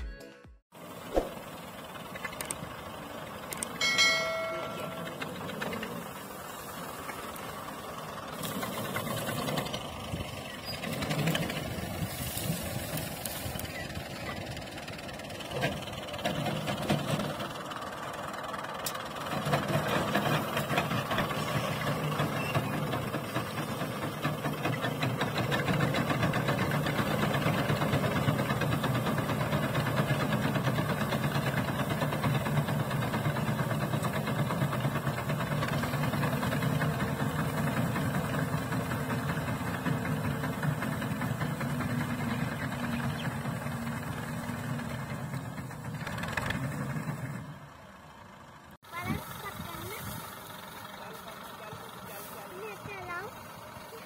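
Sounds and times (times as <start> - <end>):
tractor diesel engine under load: 0.8 - 54.0.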